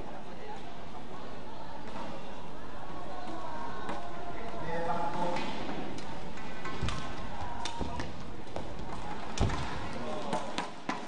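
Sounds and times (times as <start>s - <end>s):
hall murmur and voices: 0.0s - 11.0s.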